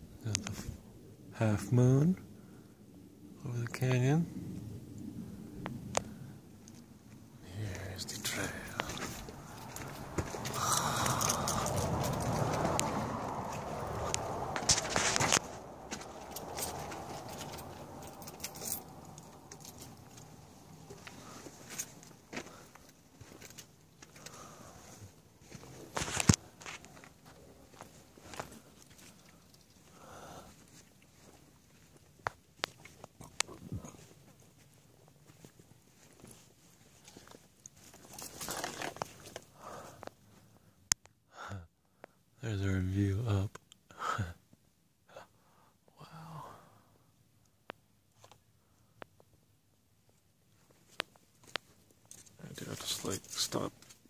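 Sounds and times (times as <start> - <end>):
rustling: 7.8 - 39.6
footsteps on sand: 8.3 - 18.1.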